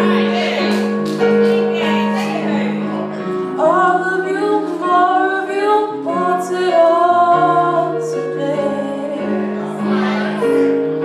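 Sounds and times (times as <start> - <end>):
sustained keyboard chords: 0.0 - 11.0
woman singing with vibrato: 3.6 - 10.4.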